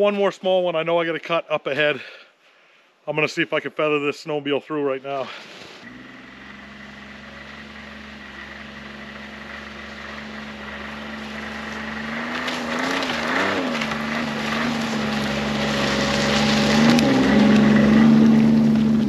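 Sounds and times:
track and snow noise: 3.1s - 19.0s
snowmobile engine revving: 5.1s - 19.0s.

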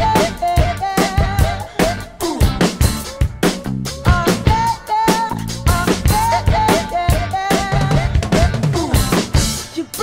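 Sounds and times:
drum kit playing pop groove: 0.0s - 10.0s
recorded song with melody: 0.0s - 10.0s.

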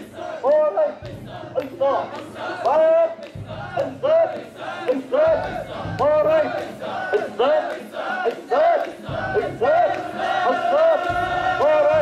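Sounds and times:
crowd shouting a rhythmic chant: 0.0s - 12.0s.

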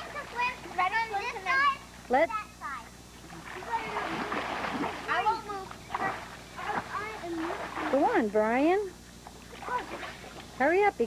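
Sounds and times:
pool water splashing: 0.0s - 11.0s
voices calling: 0.0s - 11.0s.

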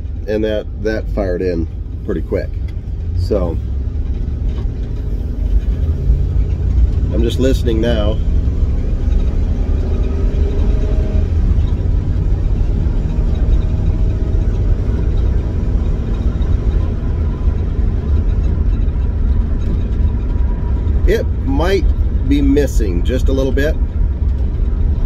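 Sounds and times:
engine low rumble: 0.0s - 25.0s.

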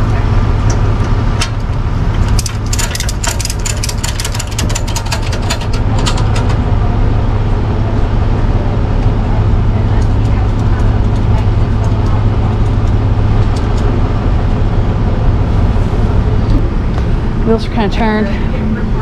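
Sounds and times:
truck engine idling: 0.0s - 19.0s
metallic clicks and clinks: 0.7s - 6.6s.

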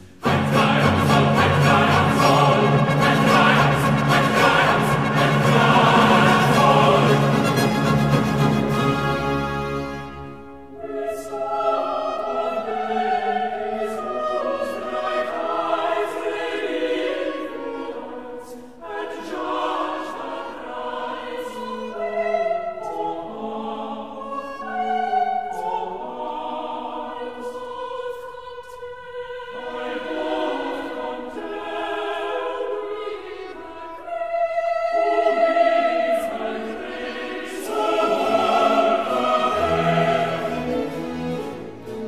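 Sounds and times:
choir singing with orchestra: 0.0s - 42.0s.

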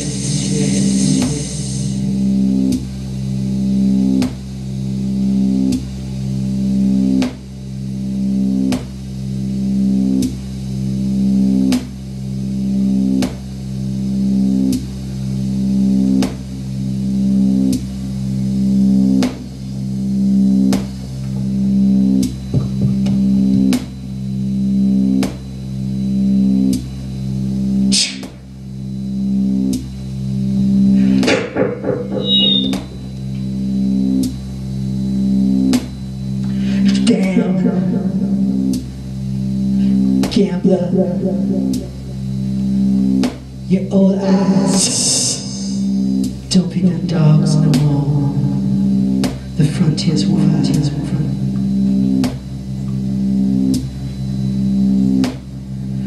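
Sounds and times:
low droning electronic loop: 0.0s - 56.0s
bright hard electronic hit: 31.0s - 33.1s.

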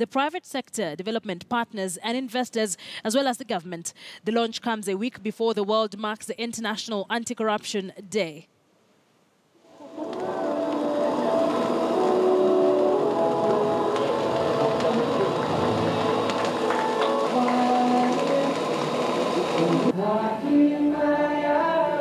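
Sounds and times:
music: 9.7s - 22.0s
many overlapping voices: 9.8s - 22.0s.

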